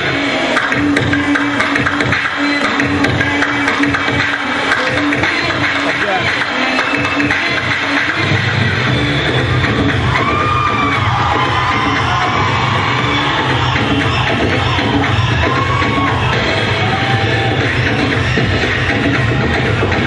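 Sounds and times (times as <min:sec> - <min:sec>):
dance music: 0:00.0 - 0:20.0.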